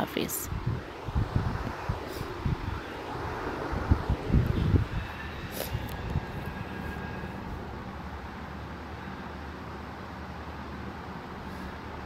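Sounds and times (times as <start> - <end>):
low rumbling: 0.4 - 12.0.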